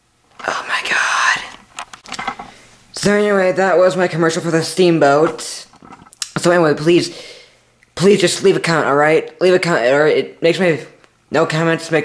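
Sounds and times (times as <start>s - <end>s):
boy whispering: 0.4s - 1.6s.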